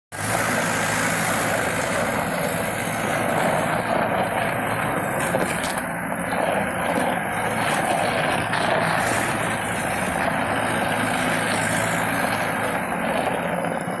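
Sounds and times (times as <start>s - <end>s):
diesel engine running: 0.1s - 14.0s.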